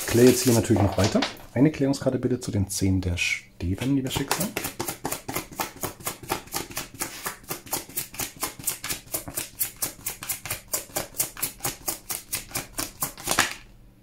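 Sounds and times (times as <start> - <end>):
cards being shuffled: 0.0 - 1.2, 3.8 - 13.7.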